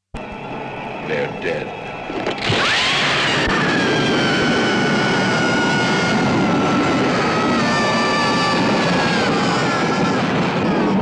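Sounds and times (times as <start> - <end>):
loud rushing drone: 0.2 - 11.0
high whining tones sliding down: 2.0 - 10.8.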